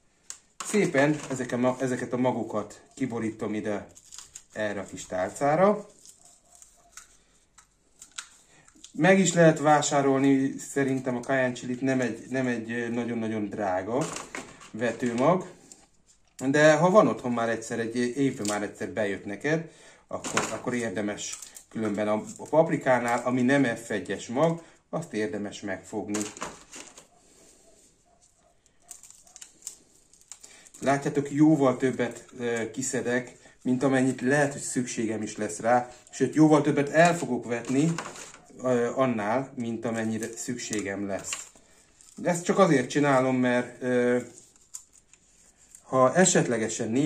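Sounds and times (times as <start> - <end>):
dried chili pods crackling: 0.1 - 19.5, 20.1 - 47.0.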